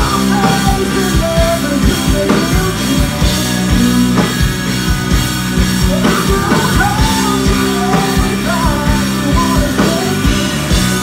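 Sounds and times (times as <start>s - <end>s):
drum beat: 0.0s - 11.0s
electric guitar: 0.0s - 11.0s
woman singing: 5.8s - 11.0s.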